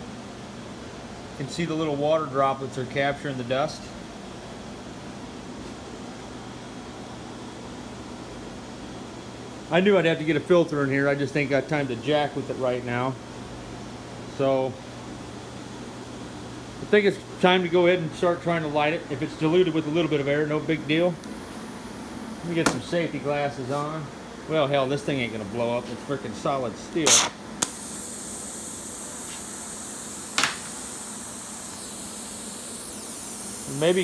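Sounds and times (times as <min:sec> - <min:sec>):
gas hissing through torch: 0:25.1 - 0:34.0.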